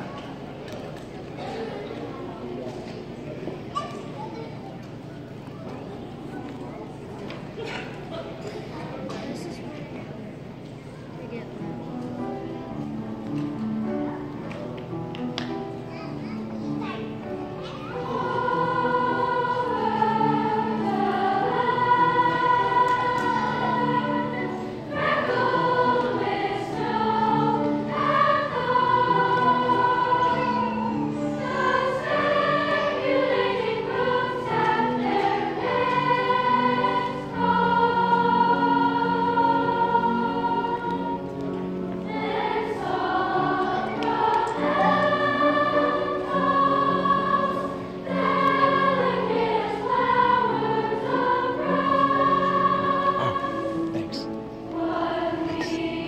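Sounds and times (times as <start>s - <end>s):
girls' choir singing: 17.2s - 56.0s.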